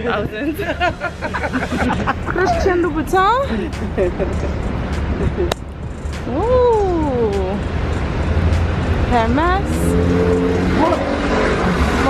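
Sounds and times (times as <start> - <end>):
low traffic rumble: 0.0 - 12.0
vehicle engine passing: 0.6 - 12.0.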